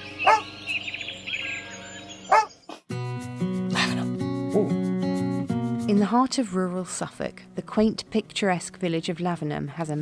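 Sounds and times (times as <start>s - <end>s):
birds chirping: 0.0s - 2.9s
dog barking: 0.2s - 0.5s, 2.3s - 2.6s
plucked acoustic guitar music: 2.9s - 8.6s.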